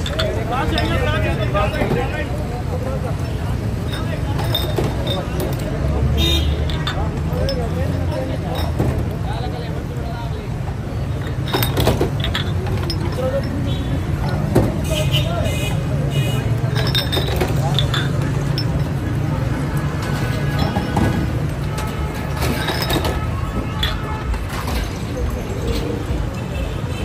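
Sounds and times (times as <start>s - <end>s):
glass bottles clinking: 0.0s - 26.8s
voices: 0.0s - 27.0s.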